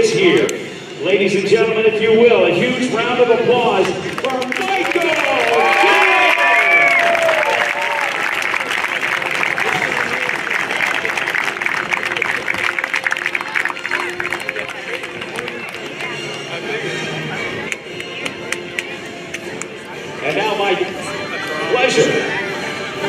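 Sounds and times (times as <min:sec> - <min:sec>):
faint music: 0:00.0 - 0:23.0
crowd applauding and cheering: 0:03.8 - 0:16.7.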